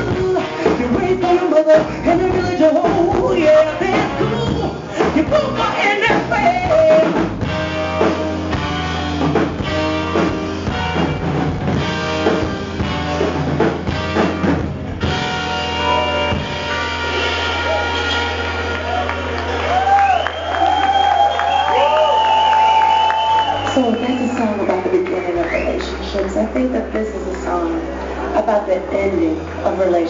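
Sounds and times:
woman singing lead vocal: 0:00.0 - 0:07.2
live soul band playing: 0:00.0 - 0:30.0.

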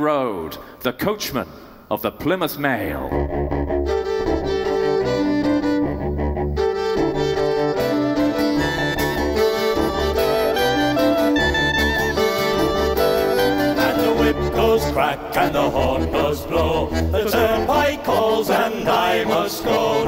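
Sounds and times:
bass line: 0:03.0 - 0:20.0
cello: 0:03.1 - 0:20.0
fiddle: 0:03.4 - 0:15.2.

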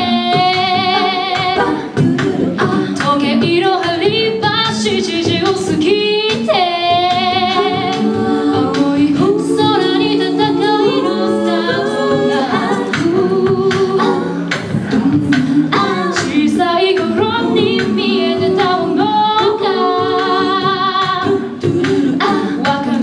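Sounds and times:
women singing in harmony: 0:00.0 - 0:23.0.

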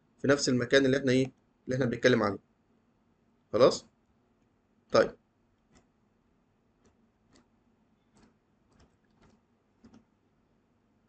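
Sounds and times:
keyboard and mouse clicks: 0:05.6 - 0:06.0, 0:06.8 - 0:10.1.

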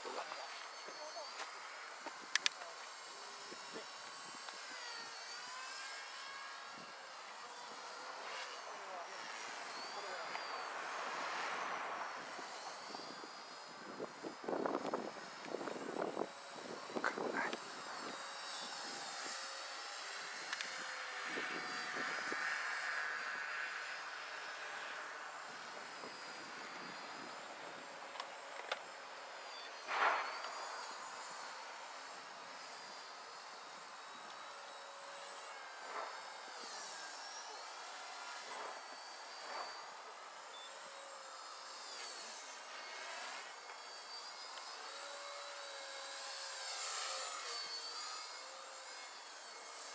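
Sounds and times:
toy helicopter motor whine: 0:00.0 - 0:49.9.

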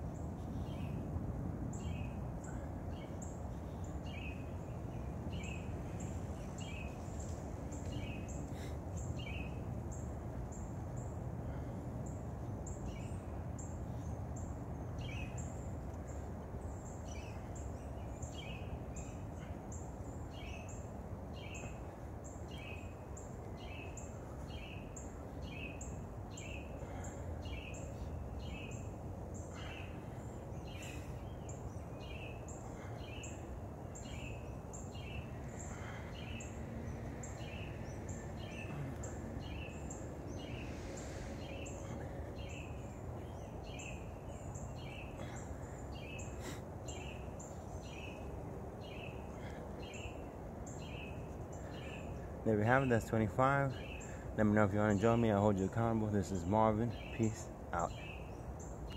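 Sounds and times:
low outdoor rumble: 0:00.0 - 0:58.9.

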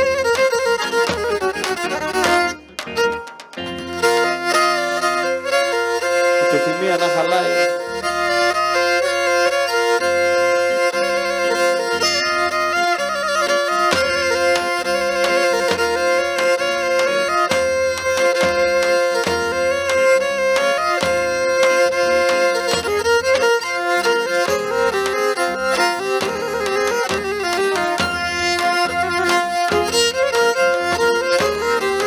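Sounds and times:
drum: 0:00.0 - 0:04.4, 0:13.9 - 0:23.6, 0:24.4 - 0:32.0
bowed fiddle melody: 0:00.0 - 0:32.0
keyboard backing: 0:00.0 - 0:32.0.

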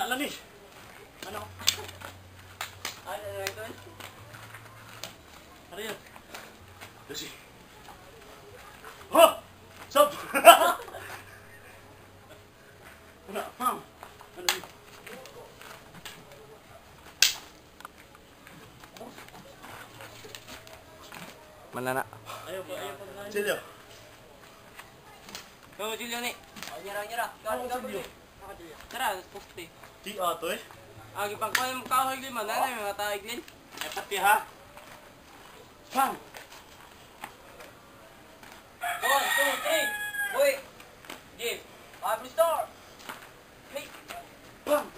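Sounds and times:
rooster crowing loudly: 0:38.8 - 0:40.6.

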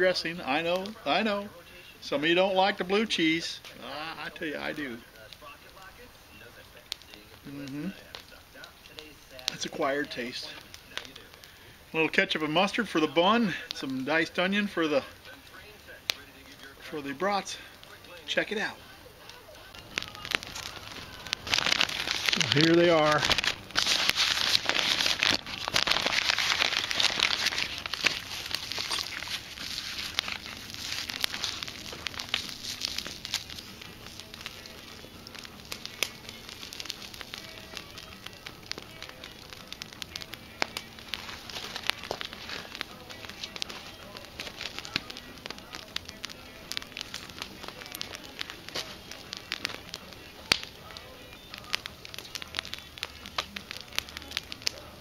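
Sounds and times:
campfire crackling and popping: 0:00.0 - 0:55.0
plastic wrapping crinkling: 0:16.4 - 0:55.0.

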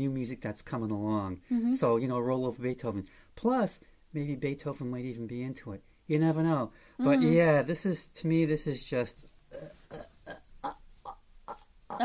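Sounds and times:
man talking: 0:00.0 - 0:09.3
man making scornful vocal noises: 0:07.0 - 0:07.5.

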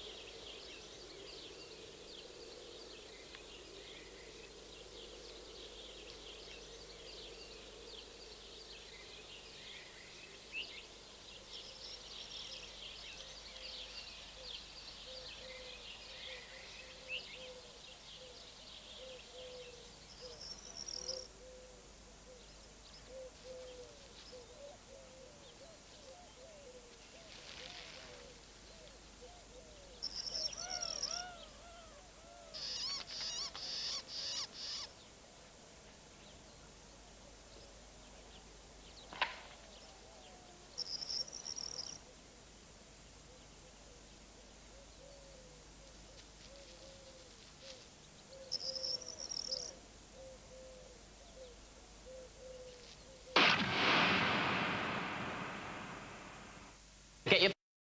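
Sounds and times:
low repeated bird call: 0:11.4 - 0:35.0, 0:43.2 - 0:56.8
birds chirping and trilling: 0:27.4 - 0:35.1, 0:48.1 - 0:56.6.

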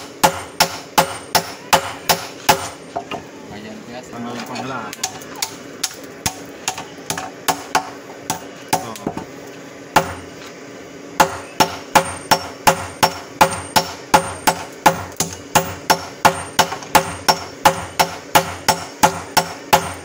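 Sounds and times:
hammers striking metal on anvil: 0:00.0 - 0:02.8, 0:05.0 - 0:09.2, 0:10.0 - 0:10.3, 0:11.2 - 0:20.0.

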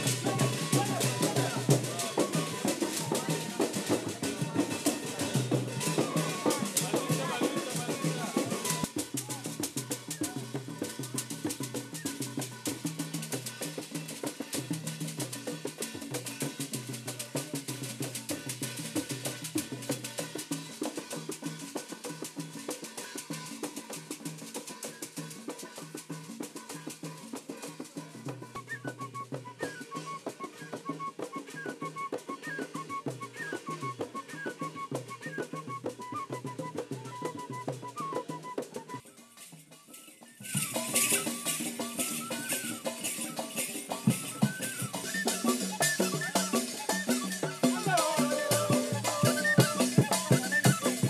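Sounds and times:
wooden flute playing high notes: 0:00.0 - 0:14.6, 0:26.6 - 0:51.0
drums beating steady rhythm: 0:00.0 - 0:51.0
rattling percussion: 0:00.0 - 0:51.0.

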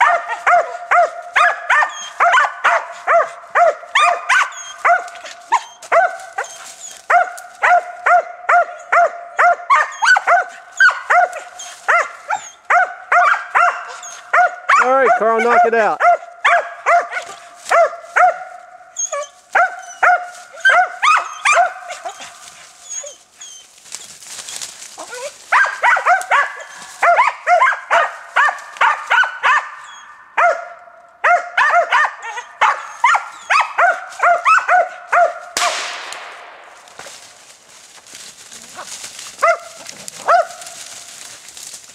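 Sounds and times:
dogs barking: 0:00.0 - 0:23.6, 0:25.0 - 0:35.8, 0:38.6 - 0:41.2.

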